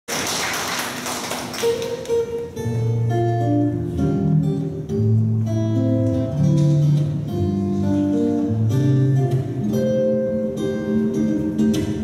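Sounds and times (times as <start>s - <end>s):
acoustic guitar note: 0.9s - 12.0s.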